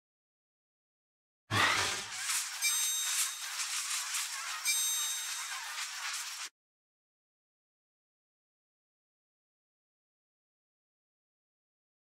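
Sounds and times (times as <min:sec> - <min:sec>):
hissing crackling noise: 0:01.8 - 0:06.5
bright ringing tones: 0:02.3 - 0:06.4.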